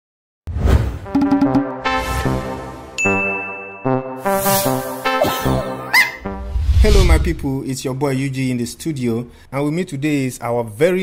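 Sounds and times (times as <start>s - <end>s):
musical jingle chords: 1.1s - 6.6s
high steady ding: 3.0s - 4.0s.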